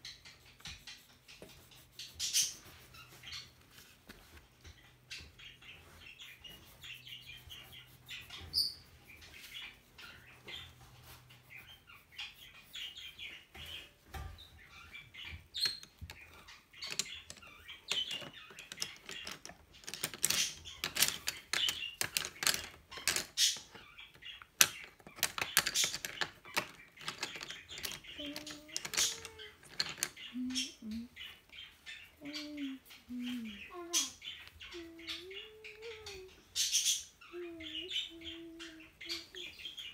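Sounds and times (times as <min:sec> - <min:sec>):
pencil scratching on paper: 0:00.3 - 0:03.8.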